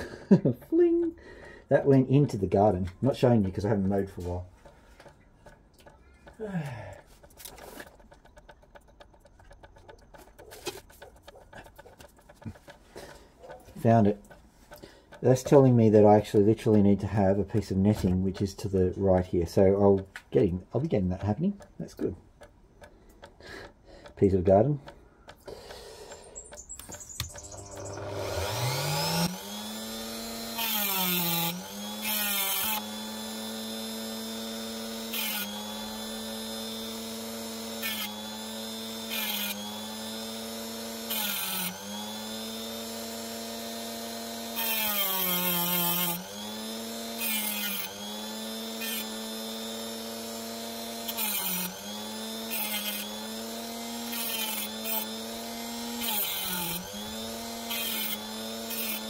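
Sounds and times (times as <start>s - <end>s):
gritty cutting of stone: 1.7s - 59.0s
rotary tool whining: 3.1s - 20.0s, 20.8s - 59.0s.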